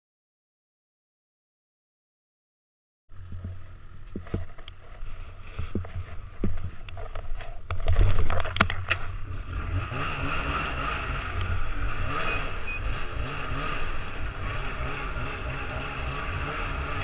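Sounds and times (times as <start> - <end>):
snowmobile engine rumble: 3.1 - 17.0
track and runner noise on ice: 3.1 - 17.0
sharp clicks and knocks: 5.6 - 9.2.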